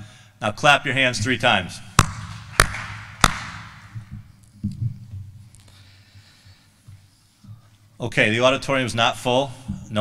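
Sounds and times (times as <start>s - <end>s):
man clapping hands: 2.0s - 3.8s.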